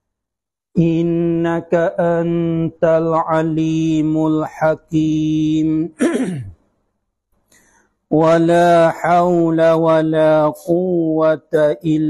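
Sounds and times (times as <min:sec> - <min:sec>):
man chanting recitation: 0:00.8 - 0:06.1, 0:08.1 - 0:12.0
faint intake of breath: 0:07.4 - 0:08.0.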